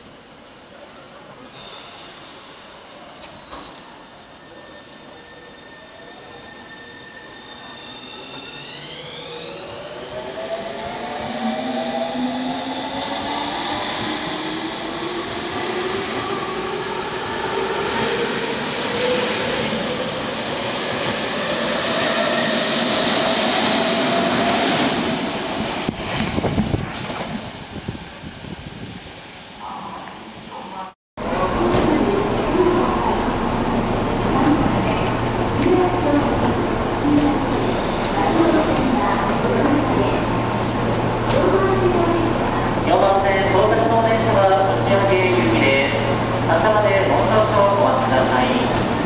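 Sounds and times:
electric train motors whining: 4.0 - 13.0.

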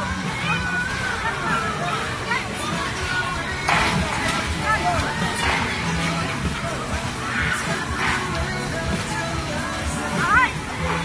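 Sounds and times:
fairground music: 0.0 - 11.0
riders' voices and calls: 0.0 - 11.0.

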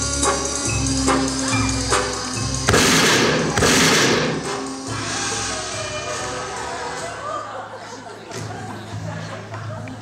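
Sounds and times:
music: 0.0 - 10.0
gunshot sound effects: 2.7 - 4.5.

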